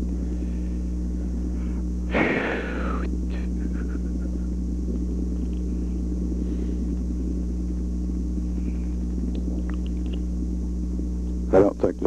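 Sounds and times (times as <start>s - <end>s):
mains hum with tape hiss: 0.0s - 12.0s.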